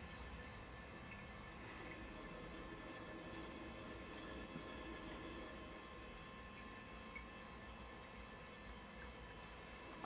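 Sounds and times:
faint hum tones: 0:00.0 - 0:10.0.

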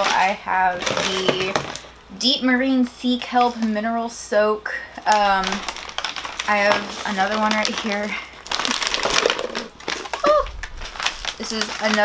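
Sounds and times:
plastic pouch crinkling: 0:05.1 - 0:12.0
person saying oh: 0:10.2 - 0:10.5.

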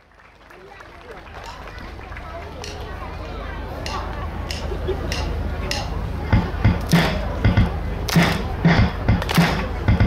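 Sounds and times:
people's voices outdoors: 0:00.0 - 0:10.0
steady low rumble: 0:02.6 - 0:10.0.

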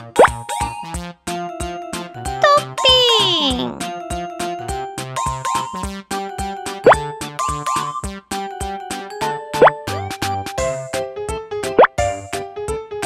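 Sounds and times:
bouncy children's music: 0:00.0 - 0:13.0.

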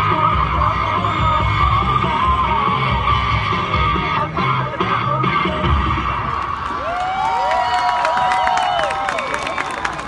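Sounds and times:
performance music: 0:00.0 - 0:06.9
crowd cheering and whooping: 0:05.9 - 0:10.0.

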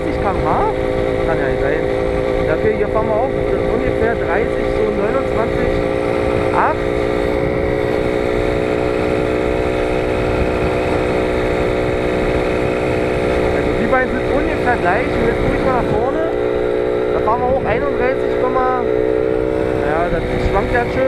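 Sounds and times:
moped engine cruising: 0:00.0 - 0:21.0
wind rumble on microphone: 0:00.0 - 0:21.0.

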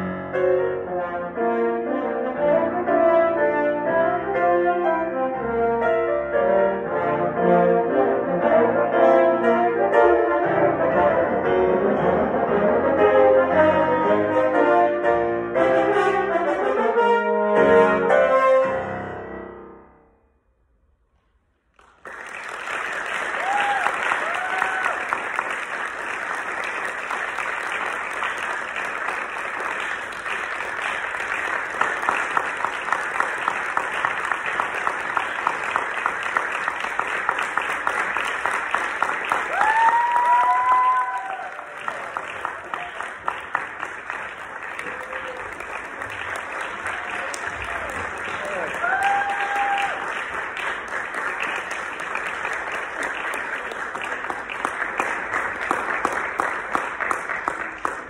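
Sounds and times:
audience applauding: 0:21.7 - 0:58.0.

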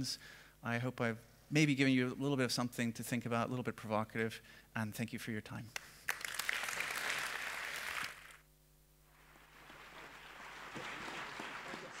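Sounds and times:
audience applauding: 0:06.1 - 0:08.4, 0:09.2 - 0:12.0.

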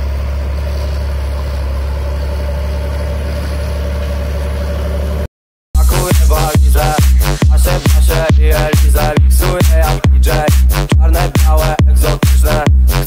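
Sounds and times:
tractor diesel engine droning: 0:00.0 - 0:13.0
electronic dance music: 0:05.8 - 0:13.0.

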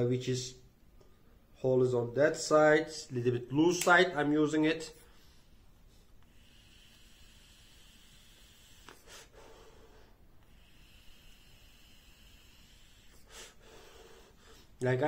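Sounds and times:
air hiss through vape: 0:05.1 - 0:14.8
breathy exhale: 0:06.2 - 0:14.8.

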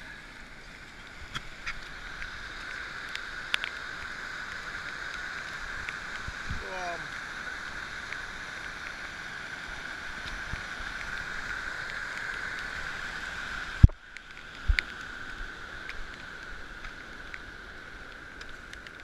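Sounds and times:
rushing water: 0:00.0 - 0:19.0
wind on microphone: 0:06.3 - 0:06.8.

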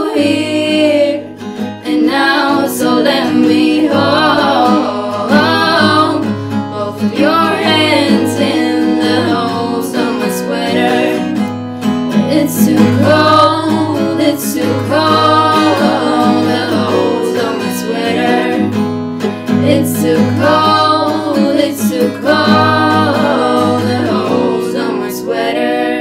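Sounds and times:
women singing in harmony: 0:00.0 - 0:11.5, 0:12.1 - 0:18.9, 0:19.5 - 0:26.0
strummed acoustic guitar: 0:00.0 - 0:26.0.

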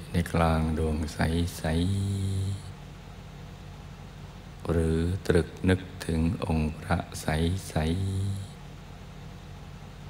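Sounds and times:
man's drawn-out voice: 0:00.0 - 0:02.8, 0:04.6 - 0:08.6
low room hum: 0:00.0 - 0:10.0.

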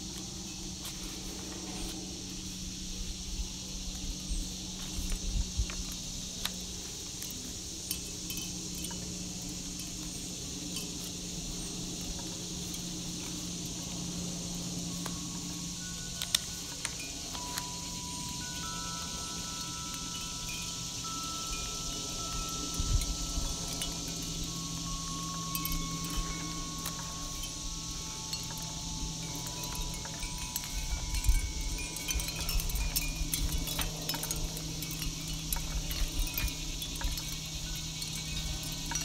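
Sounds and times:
chime notes ringing: 0:14.8 - 0:39.0.

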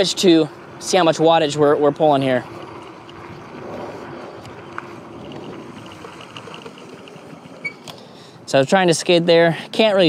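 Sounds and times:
bike tyres on dirt path: 0:00.0 - 0:10.0
disc brakes braking: 0:01.4 - 0:08.5.

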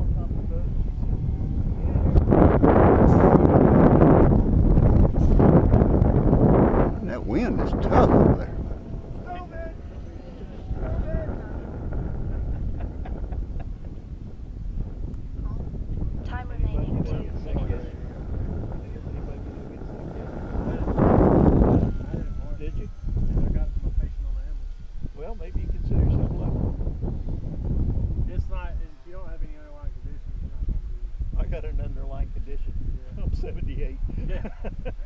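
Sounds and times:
model plane motor drone: 0:00.0 - 0:33.0
low rumble: 0:00.0 - 0:35.0
wind buffeting microphone: 0:00.0 - 0:35.0.

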